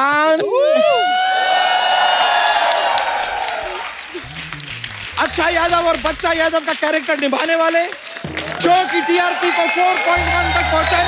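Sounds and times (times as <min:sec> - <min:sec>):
audience applause and cheering: 0:00.8 - 0:11.0
low bass music beat: 0:04.2 - 0:06.6.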